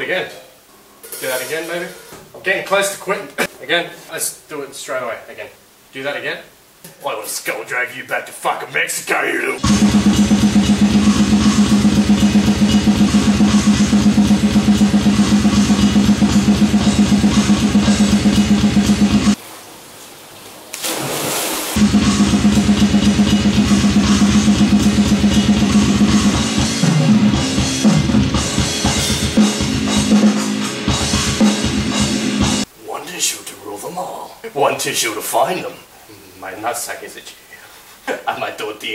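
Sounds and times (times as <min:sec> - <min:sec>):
fast metal drumming: 0:09.6 - 0:19.4, 0:21.8 - 0:32.7.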